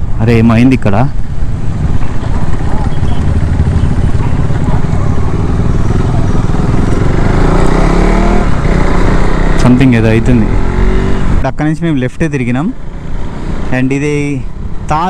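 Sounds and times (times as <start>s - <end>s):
motorcycle engine running: 0.0s - 11.4s, 12.7s - 15.0s.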